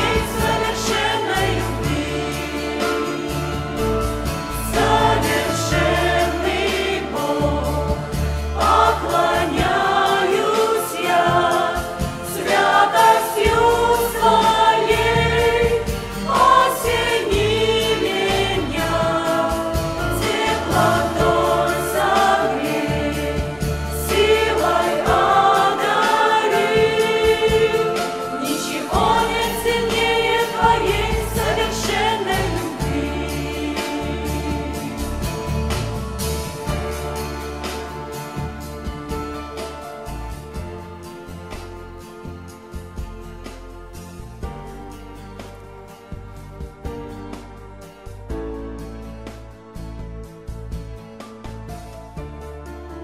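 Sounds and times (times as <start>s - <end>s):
choir singing worship song: 0.0s - 47.4s.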